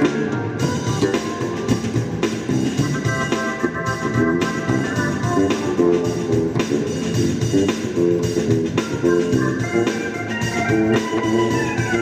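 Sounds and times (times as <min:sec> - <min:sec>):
electric bass guitar: 0:00.0 - 0:12.0
organ-like synthesizer keyboard: 0:00.0 - 0:12.0
steady drum beat: 0:00.0 - 0:12.0.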